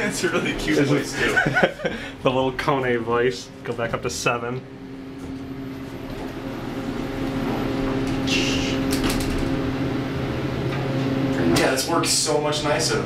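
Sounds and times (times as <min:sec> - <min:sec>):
elevator machine hum: 0:00.0 - 0:13.0.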